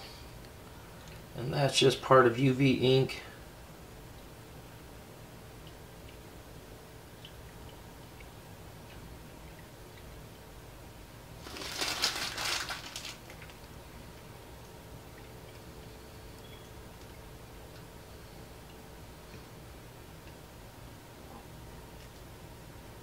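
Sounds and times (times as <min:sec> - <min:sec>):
faint steady hum: 0:00.0 - 0:23.0
plastic bottle crinkling: 0:11.4 - 0:13.7.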